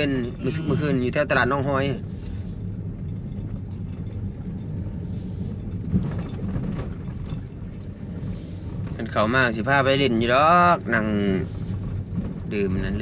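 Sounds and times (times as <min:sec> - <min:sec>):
car engine and tyres rumbling: 0:00.0 - 0:13.0.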